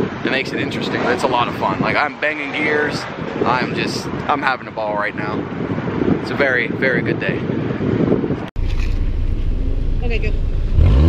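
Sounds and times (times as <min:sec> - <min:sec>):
wind buffeting microphone: 0:00.0 - 0:11.0
car engine idling: 0:08.6 - 0:11.0.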